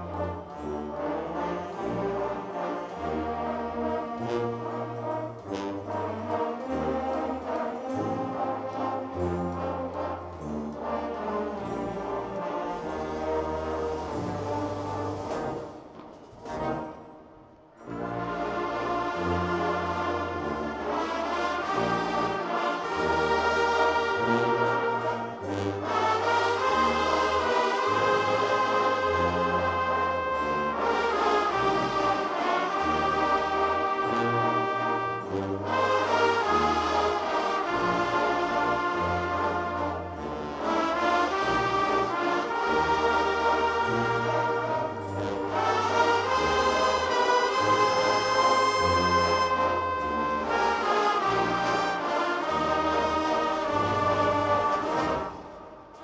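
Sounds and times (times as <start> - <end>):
tubas playing bass line: 0.0 - 55.9
wind band of saxophones and brass: 0.0 - 56.0.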